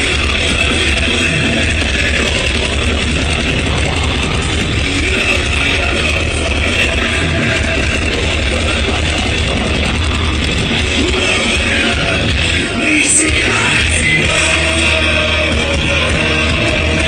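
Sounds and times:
distorted electric guitars: 0.0 - 17.0
drums: 0.0 - 17.0.

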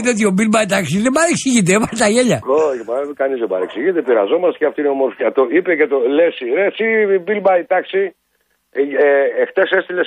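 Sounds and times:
person talking over telephone: 0.0 - 4.3.

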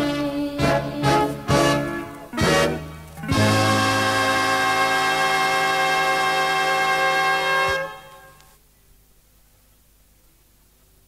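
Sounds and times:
brass band final chord: 1.0 - 8.4.

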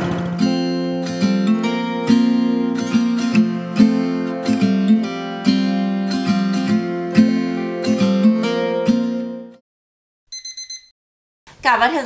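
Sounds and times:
acoustic guitar music: 0.0 - 9.6
alarm clock beeps: 10.3 - 10.9.

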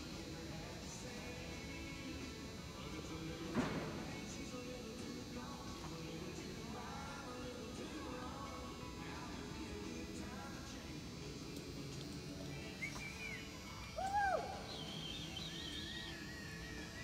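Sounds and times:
low hum of indoor arena: 0.0 - 17.0
birds chirping: 14.6 - 17.0.

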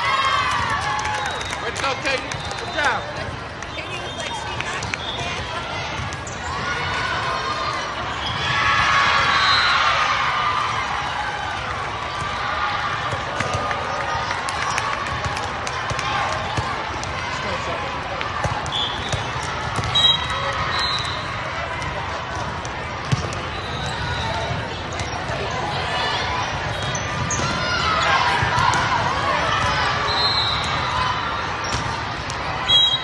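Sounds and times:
chatter and shouting: 0.0 - 33.0
shoes squeaking on court floor: 1.6 - 6.7, 26.6 - 28.5
volleyball hits: 12.1 - 17.2, 18.2 - 25.2, 27.1 - 30.0, 31.6 - 32.6.

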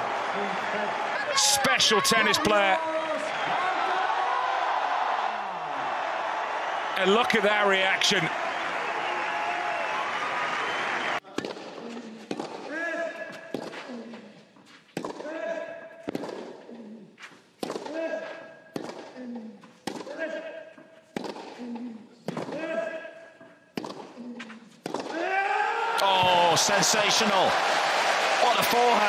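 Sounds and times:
crowd cheering: 0.0 - 11.2, 25.2 - 29.0
tennis ball struck by rackets: 17.6 - 18.0, 18.7 - 19.1, 21.1 - 21.6.

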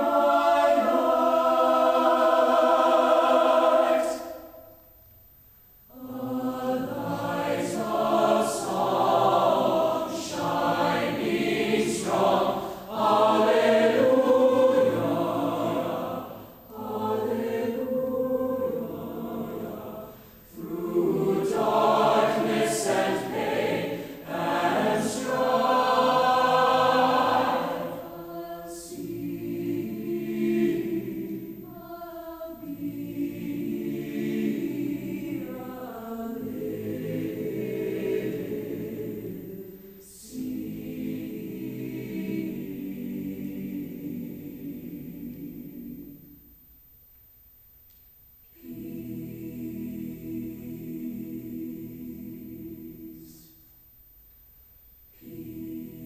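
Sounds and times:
choir singing in a hall: 0.0 - 56.0.

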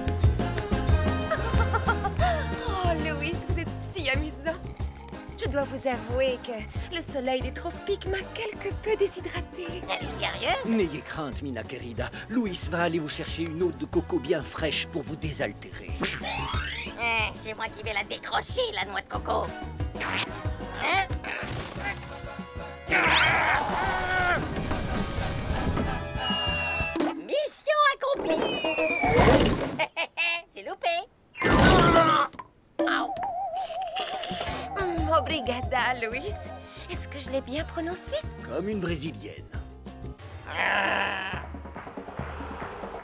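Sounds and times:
soft background music: 0.0 - 22.9, 34.5 - 42.8
cartoon music: 16.0 - 17.3, 32.9 - 37.6
wooden knocks and cracks: 24.3 - 26.0.

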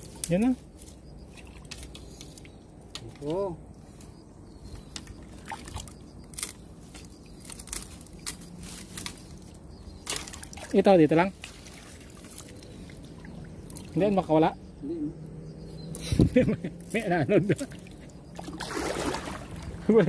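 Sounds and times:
dry twigs and leaves crackling: 0.0 - 14.1.

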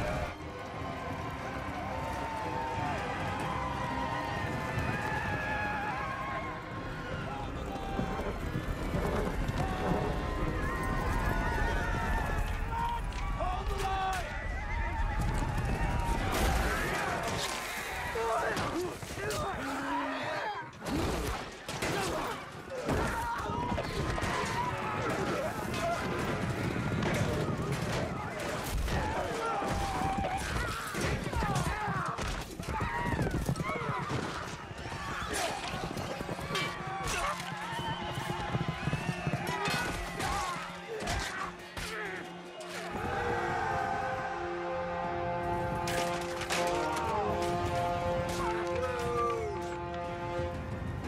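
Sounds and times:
hoofbeats: 0.0 - 13.4, 23.0 - 44.4, 45.3 - 51.0
galloping hooves rumbling: 0.0 - 18.3, 23.0 - 41.2, 45.5 - 51.0
men shouting: 39.8 - 45.5.

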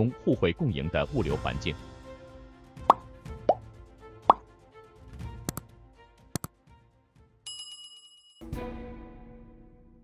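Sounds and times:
soft background music: 0.0 - 7.5
cartoon pop sound effects: 2.8 - 3.6.

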